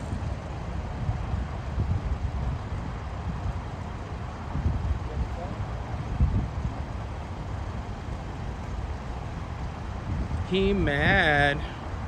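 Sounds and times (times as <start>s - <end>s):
vehicle running: 0.0s - 12.0s
wind buffeting microphone: 0.0s - 12.0s.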